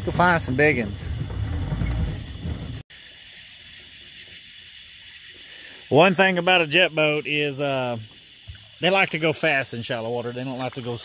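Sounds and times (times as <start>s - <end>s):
boat motor rumble: 0.0s - 2.8s
insects chirring at night: 0.0s - 11.0s.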